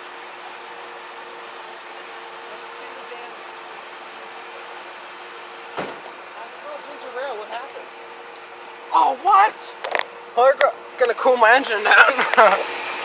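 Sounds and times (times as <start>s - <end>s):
car engine idling: 0.0s - 13.0s
sharp knock: 5.8s - 6.2s.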